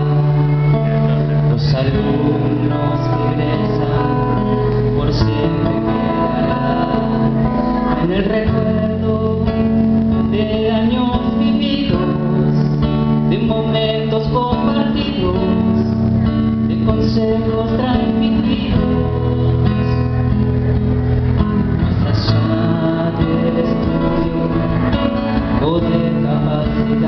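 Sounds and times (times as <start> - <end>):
classical guitar playing slow song: 0.0 - 27.0.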